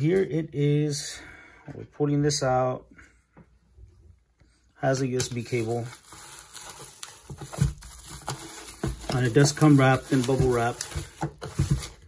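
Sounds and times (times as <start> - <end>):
bubble wrap crinkling: 5.2 - 12.0
cardboard box rustling: 5.4 - 12.0.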